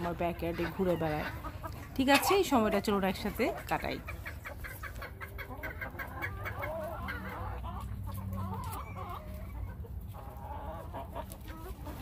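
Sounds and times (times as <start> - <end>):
hens clucking: 0.0 - 12.0.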